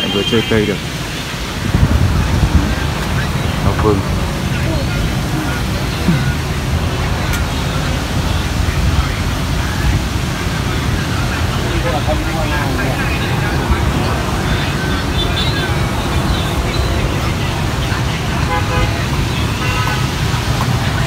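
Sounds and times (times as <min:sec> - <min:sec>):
road traffic rumble: 0:00.0 - 0:21.0
faint indistinct voices: 0:01.6 - 0:21.0.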